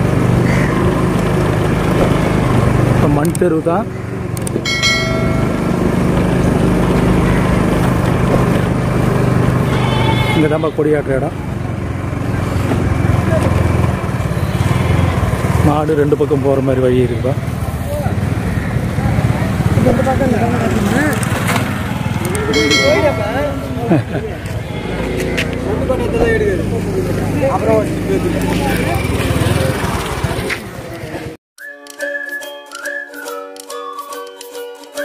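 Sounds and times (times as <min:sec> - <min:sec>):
motorcycle engine running: 0:00.0 - 0:31.4.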